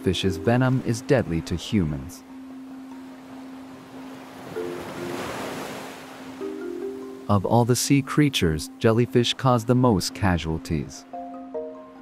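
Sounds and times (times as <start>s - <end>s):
ocean surf: 0.0s - 12.0s
soft background music: 0.0s - 12.0s.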